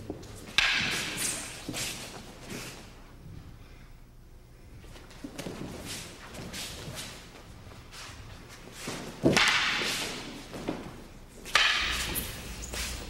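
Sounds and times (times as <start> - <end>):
wooden swords cracking together: 0.5 - 1.5, 9.2 - 10.8, 11.5 - 12.2
soft movement sounds: 4.6 - 13.0.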